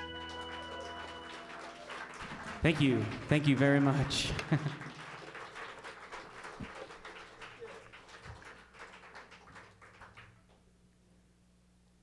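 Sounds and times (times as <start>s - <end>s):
audience applause: 0.0s - 10.6s.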